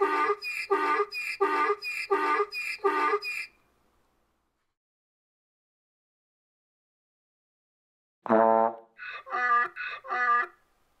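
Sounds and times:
donkey braying: 0.0 - 3.5, 9.0 - 10.6.

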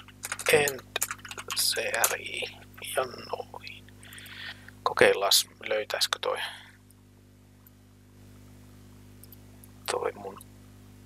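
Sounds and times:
computer keyboard keystrokes: 0.0 - 2.1.

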